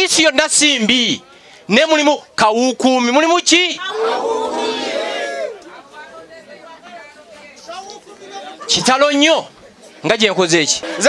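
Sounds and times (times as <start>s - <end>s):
faint crowd chatter: 0.0s - 11.0s.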